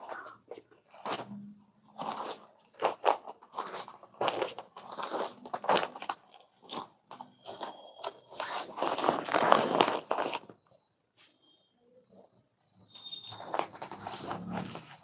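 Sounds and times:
fabric rustling and crinkling: 0:00.0 - 0:10.6, 0:13.2 - 0:15.0.

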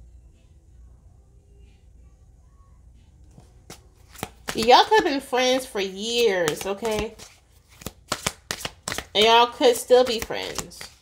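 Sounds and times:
cards shuffled by hand: 0:03.3 - 0:11.0.

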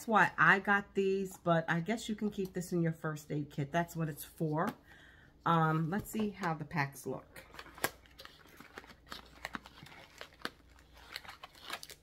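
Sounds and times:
packaging crinkling: 0:07.4 - 0:12.0.

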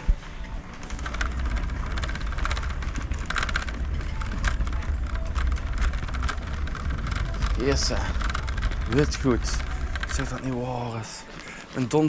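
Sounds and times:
trolley wheels rumbling: 0:00.0 - 0:12.0
fast clicking rattle: 0:00.8 - 0:11.0.

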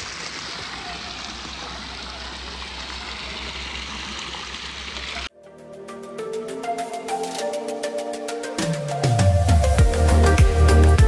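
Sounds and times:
stream water spilling over rocks: 0:00.0 - 0:05.3.

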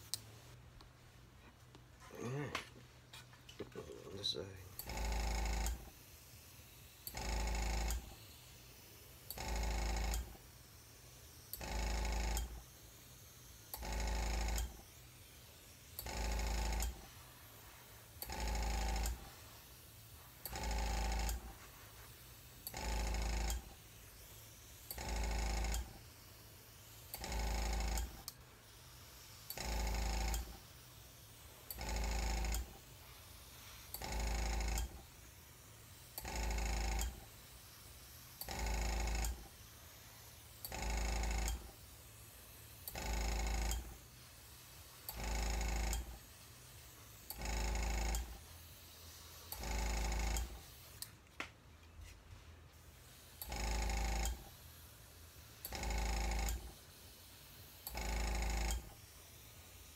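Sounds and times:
faint hiss of air: 0:00.0 - 0:59.9
small compressor running: 0:03.8 - 0:51.3, 0:52.4 - 0:59.9.

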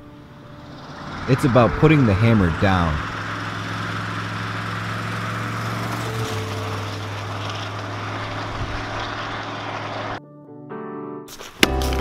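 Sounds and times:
engine running under throttle: 0:00.0 - 0:10.2.

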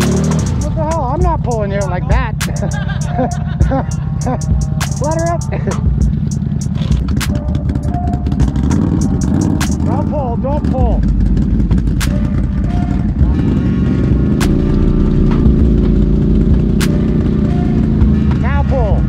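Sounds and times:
atv engine droning in mud: 0:00.0 - 0:19.0.

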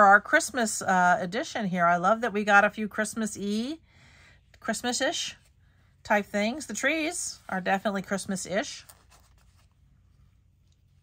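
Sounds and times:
low room hum: 0:00.0 - 0:11.0
fabric rustling: 0:06.4 - 0:11.0.

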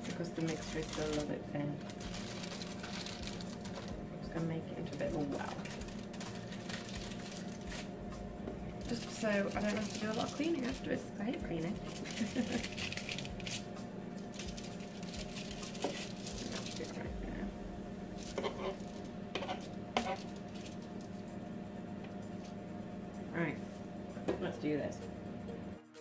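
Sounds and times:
aluminium foil crinkling: 0:00.0 - 0:04.0, 0:04.8 - 0:07.9, 0:08.8 - 0:17.4, 0:18.2 - 0:21.2
steady low hum: 0:00.0 - 0:25.9.

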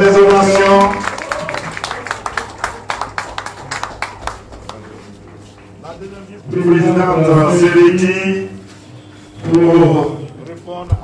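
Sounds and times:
audience applause: 0:00.0 - 0:05.0.

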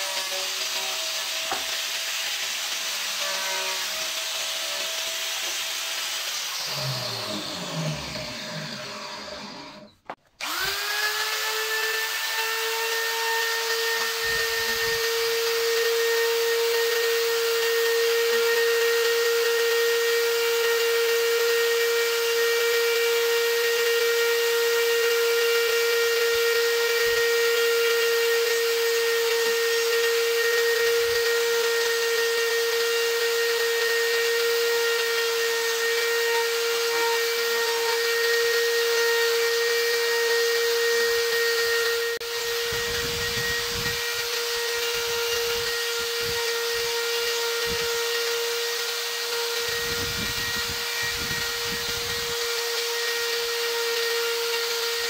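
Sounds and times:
die grinder whining: 0:00.0 - 0:55.0
power tool winding down: 0:00.0 - 0:55.0.

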